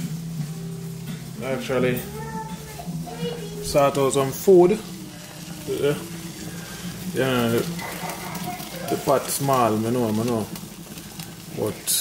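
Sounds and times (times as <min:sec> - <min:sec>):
water boiling in a saucepan: 0:00.0 - 0:12.0.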